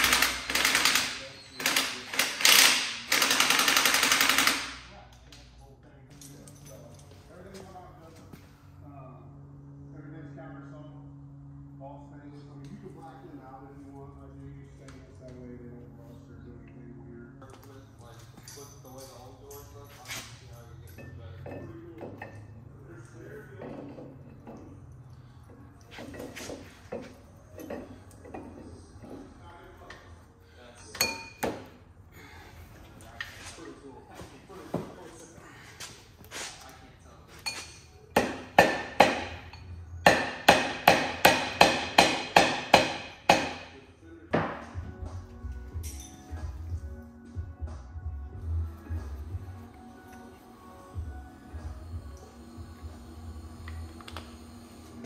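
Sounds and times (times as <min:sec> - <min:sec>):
metal clinks and knocks: 0:06.1 - 0:07.3, 0:18.2 - 0:22.5, 0:45.7 - 0:46.6.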